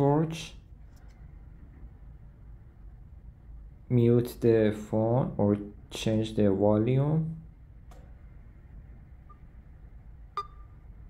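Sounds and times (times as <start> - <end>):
room hum: 0.0 - 11.0
short beeps: 10.4 - 10.8.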